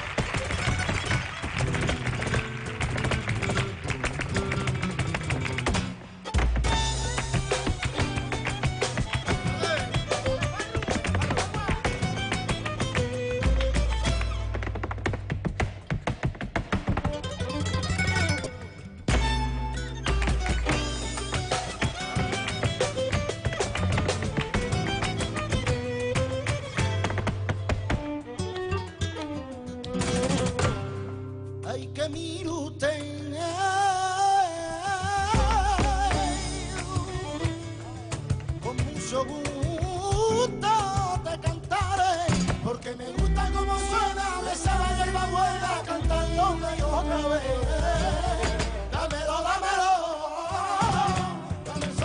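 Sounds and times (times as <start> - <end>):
dance footwork strikes on stage: 0.0 - 18.2, 19.1 - 28.3, 35.2 - 49.4
acoustic guitar: 0.0 - 52.0
flamenco music: 0.0 - 52.0.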